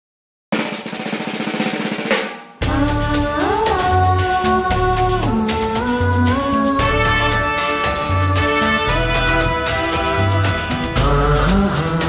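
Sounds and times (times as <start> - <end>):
snare drum roll: 0.5 - 2.8
held instrument notes: 2.7 - 12.0.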